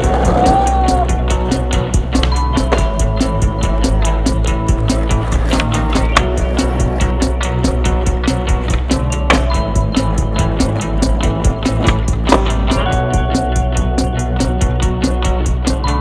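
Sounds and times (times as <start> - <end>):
rock music with drums and guitar: 0.0 - 16.0
skateboard wheels rolling on concrete: 0.0 - 16.0
skateboard clacks: 0.1 - 12.9.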